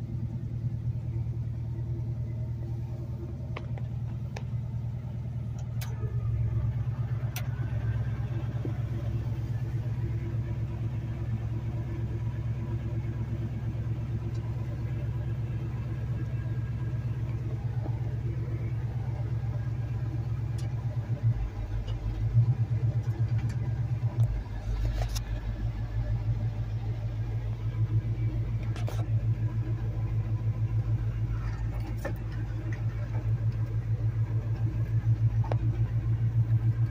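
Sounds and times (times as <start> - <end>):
truck engine running: 0.0 - 36.9.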